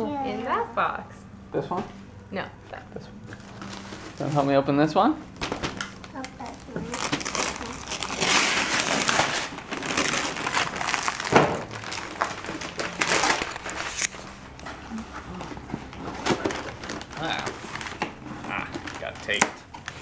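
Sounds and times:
wrapping paper tearing and crinkling: 0:03.4 - 0:04.6, 0:05.3 - 0:20.0.

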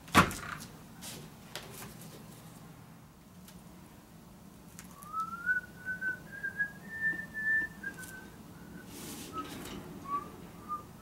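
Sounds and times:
person whistling a slow tune: 0:05.0 - 0:11.0.

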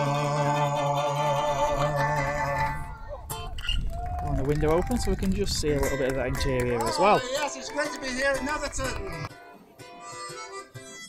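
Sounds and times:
person singing: 0:00.0 - 0:03.2.

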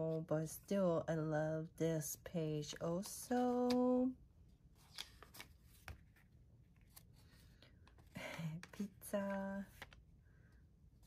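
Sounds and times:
paper pages turning: 0:04.7 - 0:10.0.

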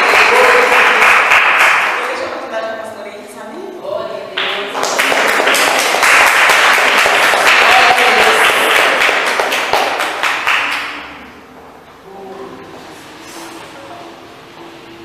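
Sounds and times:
congregation applauding: 0:00.0 - 0:02.3, 0:04.4 - 0:11.3.

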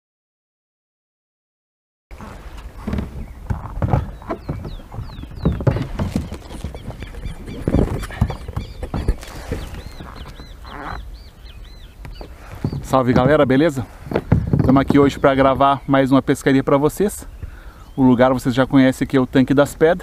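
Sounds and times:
birds chirping: 0:02.1 - 0:20.0
knocks of camera and kayak handling: 0:02.3 - 0:11.0, 0:12.0 - 0:15.2.

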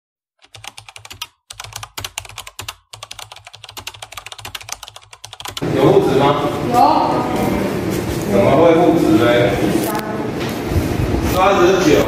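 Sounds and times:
classroom hubbub: 0:05.6 - 0:12.0.

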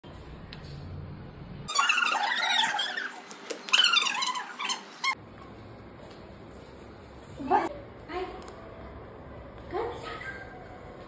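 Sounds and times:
child squealing: 0:01.7 - 0:05.2.

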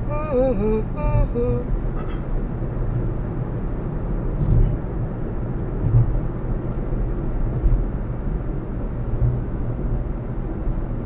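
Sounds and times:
tyre and engine noise inside car: 0:00.0 - 0:11.0.

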